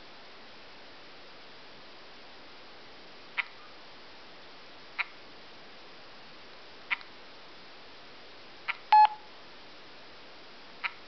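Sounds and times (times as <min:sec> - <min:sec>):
electronic beep: 0:08.9 - 0:09.2
touchscreen tap clicks: 0:09.0 - 0:09.2.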